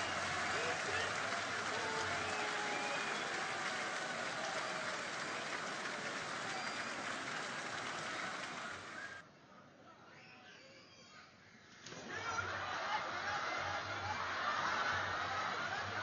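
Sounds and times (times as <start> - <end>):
crowd clapping: 0.0 - 9.2.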